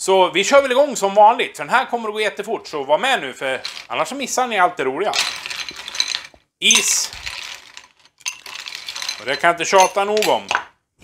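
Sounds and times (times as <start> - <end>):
ice cubes clinking in glass: 3.6 - 4.0, 5.1 - 10.6.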